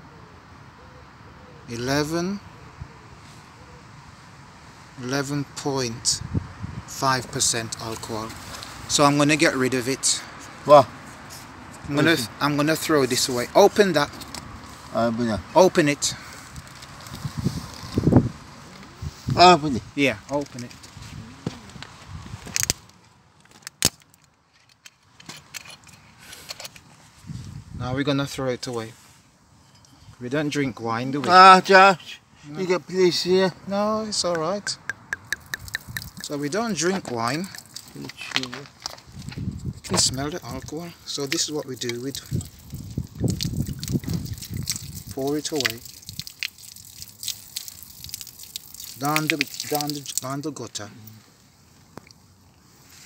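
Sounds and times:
person speaking: 6.9 - 10.9, 11.8 - 14.2, 30.2 - 38.8, 45.0 - 45.9, 48.9 - 51.3
sharp clicks: 34.8 - 36.3
wine pouring and splashing on ground: 35.4 - 38.6, 40.0 - 50.9.

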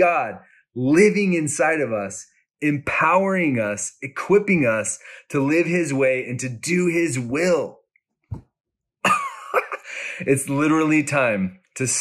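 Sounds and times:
man's breathy vocal sound: 9.8 - 10.3.

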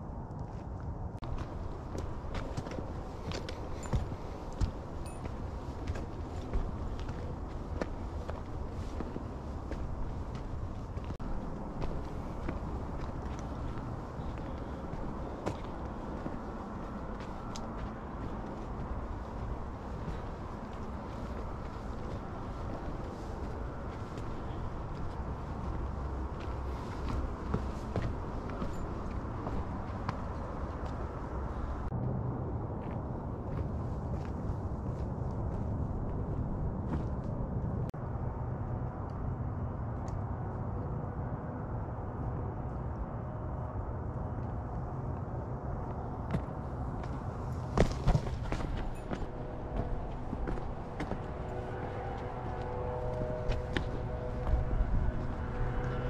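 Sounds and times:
steady low rumble: 0.0 - 56.0
gravel ticking underfoot: 0.3 - 32.1, 43.8 - 56.0
footsteps on rocky dirt trail: 1.2 - 31.9, 32.8 - 37.4, 45.1 - 56.0.

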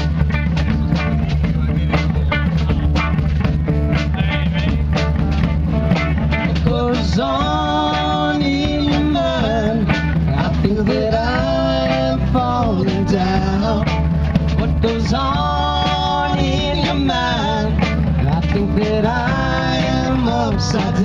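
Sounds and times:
drums: 0.0 - 21.0
electric bass: 0.0 - 21.0
electric guitars: 0.0 - 21.0
man singing long notes: 6.4 - 21.0.

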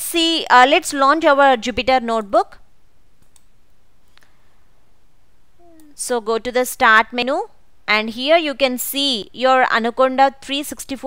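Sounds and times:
low steady hiss: 0.0 - 11.0
computer mouse clicks: 3.2 - 4.3.

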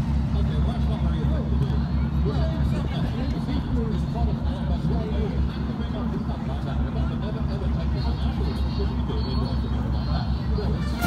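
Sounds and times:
motorboat engine throbbing: 0.0 - 11.0.

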